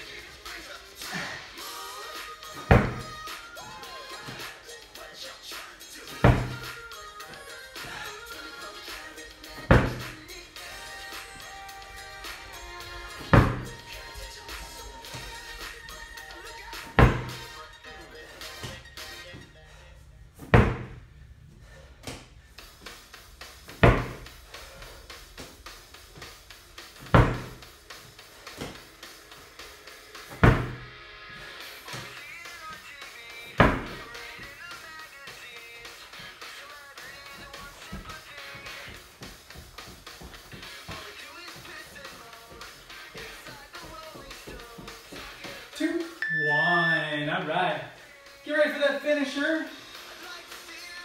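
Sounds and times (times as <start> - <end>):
background music: 0.0 - 51.0
ball thudding on rubber mat: 2.6 - 3.2, 6.2 - 6.7, 9.6 - 10.2, 13.2 - 14.0, 16.8 - 17.5, 20.4 - 21.0, 23.7 - 24.3, 27.0 - 27.6, 28.6 - 28.8, 30.3 - 30.9, 33.5 - 34.1.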